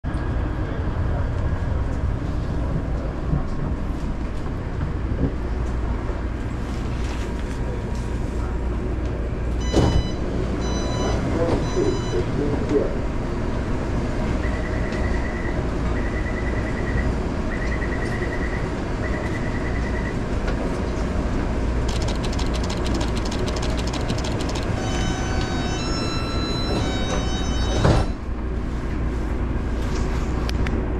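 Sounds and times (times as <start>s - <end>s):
train carriage rumble: 0.0s - 30.9s
rapid clicking: 21.9s - 24.8s
electronic beeps: 21.9s - 28.1s.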